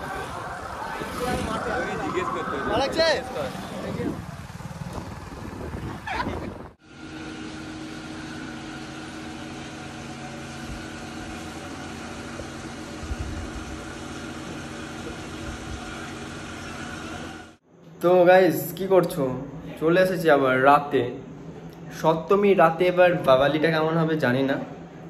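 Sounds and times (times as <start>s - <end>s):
road noise in wet traffic: 0.0s - 17.6s
machine hum with held tones: 6.8s - 17.6s.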